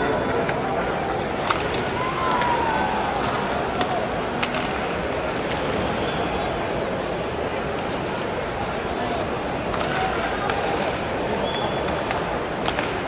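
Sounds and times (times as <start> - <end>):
crowd voices din: 0.0 - 13.0.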